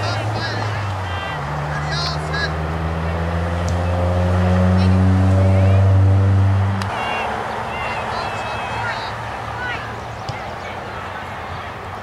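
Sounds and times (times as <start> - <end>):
low engine hum: 0.0 - 10.3.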